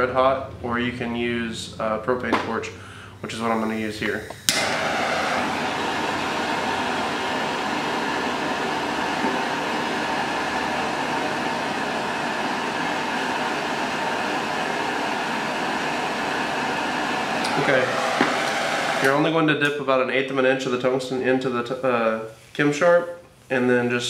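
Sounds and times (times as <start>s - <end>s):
propane torch hissing: 3.1s - 19.4s.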